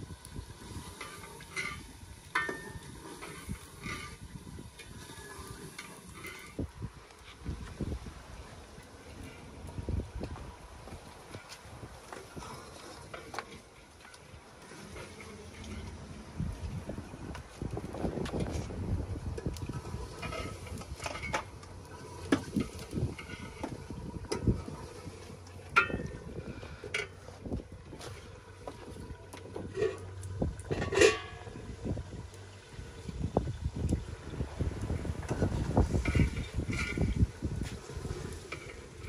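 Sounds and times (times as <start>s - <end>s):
metal pots clinking and knocking: 1.0s - 4.2s, 25.7s - 26.2s, 29.6s - 31.6s.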